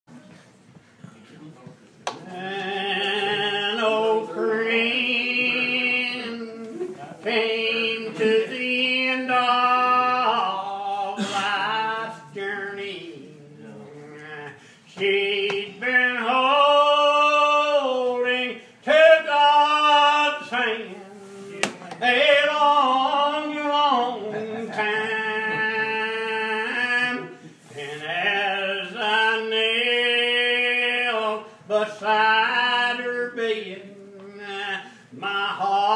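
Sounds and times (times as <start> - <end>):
unaccompanied hymn singing: 2.1 - 35.9.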